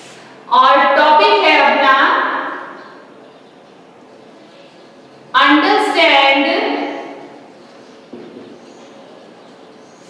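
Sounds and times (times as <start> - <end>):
woman's voice echoing: 0.4 - 3.1, 5.3 - 7.4.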